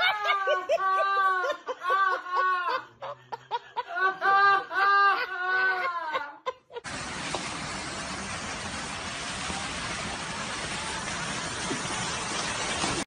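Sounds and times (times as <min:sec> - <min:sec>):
steady hiss: 0:06.8 - 0:13.0.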